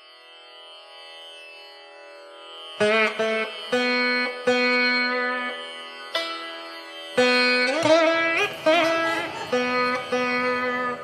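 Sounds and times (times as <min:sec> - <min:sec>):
indian classical drone music: 0:00.0 - 0:11.0.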